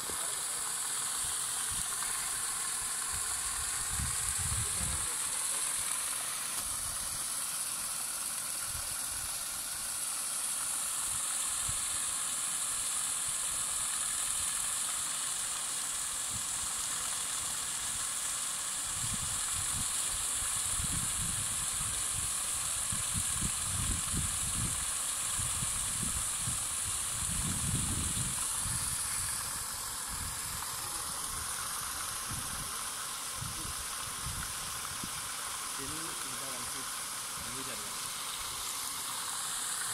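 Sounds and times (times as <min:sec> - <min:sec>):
paddle wheel aerator splashing water: 0:00.0 - 0:16.0, 0:19.1 - 0:39.9.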